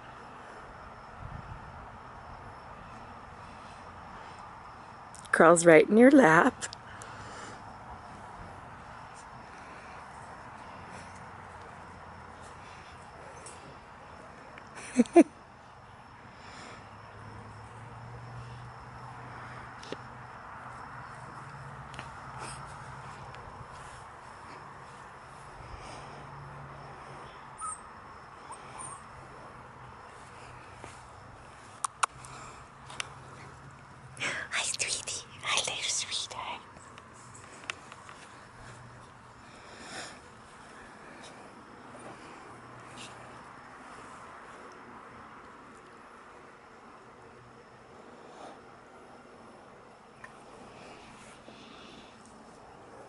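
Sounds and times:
outdoor background hiss: 0.0s - 53.0s
person whispering: 34.2s - 36.7s.

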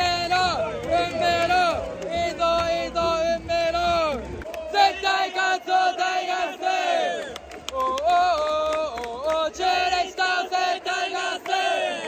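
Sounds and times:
stadium crowd chanting: 0.0s - 12.0s.

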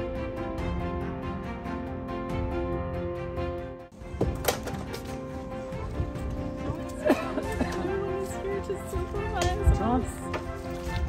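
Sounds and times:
background music: 0.0s - 11.0s
woman speaking: 7.3s - 10.3s.

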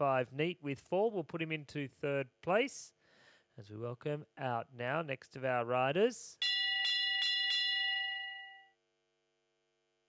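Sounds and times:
bell ringing: 6.4s - 8.7s.

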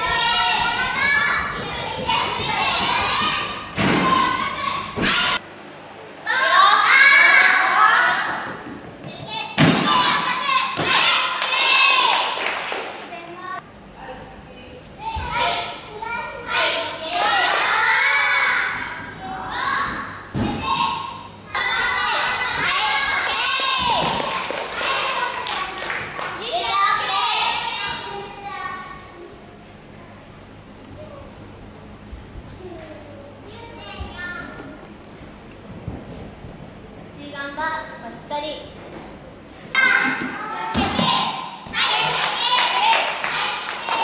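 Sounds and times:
children chattering and calling: 0.0s - 5.4s, 6.2s - 12.2s, 26.4s - 30.2s, 39.8s - 44.0s.

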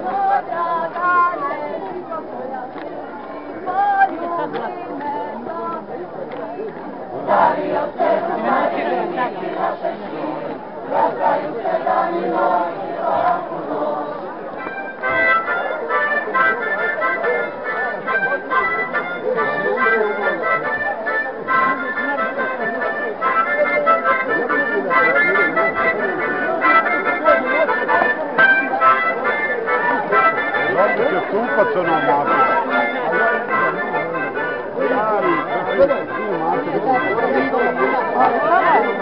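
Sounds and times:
accordion folk dance tune: 0.0s - 39.0s
crowd talking: 0.0s - 39.0s.

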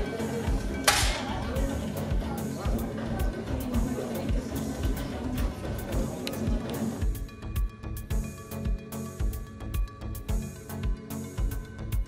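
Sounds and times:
background music with steady beat: 0.0s - 12.0s
air rifle shot: 0.9s - 1.3s.

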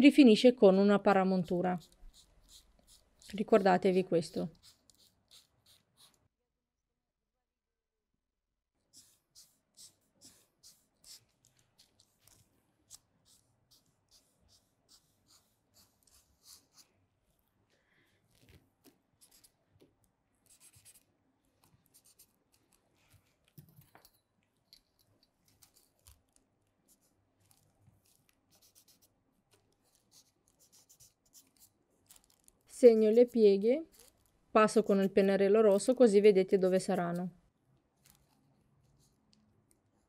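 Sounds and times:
woman's voice: 0.0s - 1.8s, 3.3s - 4.5s, 32.7s - 33.9s, 34.6s - 37.3s
marker scratching on paper: 1.2s - 6.2s, 8.8s - 16.9s, 20.4s - 21.1s, 21.9s - 22.4s, 28.0s - 29.2s, 29.8s - 31.7s.

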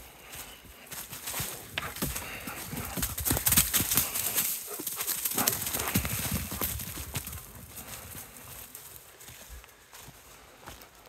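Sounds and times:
dogs running on dry leaves: 0.2s - 10.2s.

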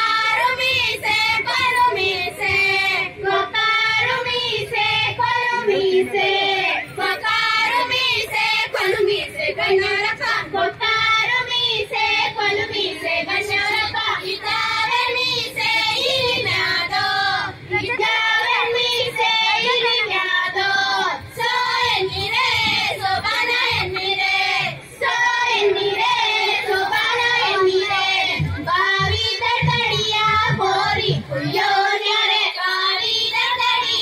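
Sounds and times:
women singing folk song: 0.0s - 34.0s.

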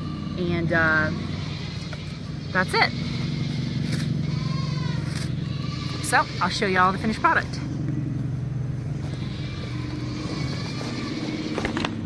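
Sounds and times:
low machine hum: 0.0s - 12.0s
faint animal call: 9.0s - 11.8s.

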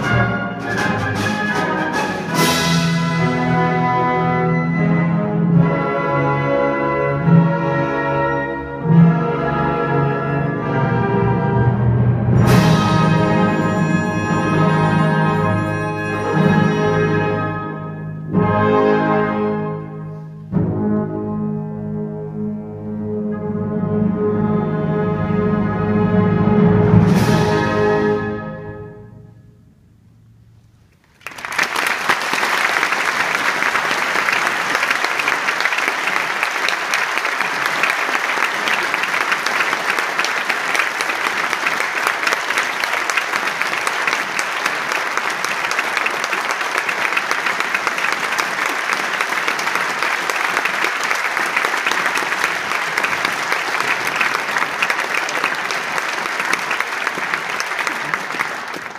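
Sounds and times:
audience applause: 31.0s - 58.9s.

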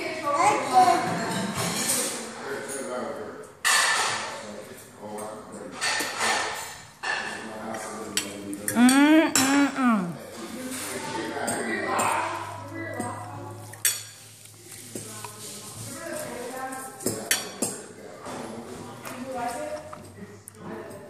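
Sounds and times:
tableware clattering and clinking: 0.5s - 9.7s, 10.3s - 15.1s, 15.8s - 19.4s
drawn-out voice sound: 8.8s - 10.2s.

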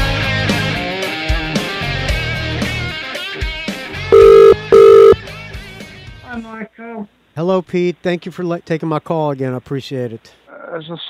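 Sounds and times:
faint rock music with guitar: 0.0s - 6.5s
telephone ringing tone: 4.1s - 5.2s.

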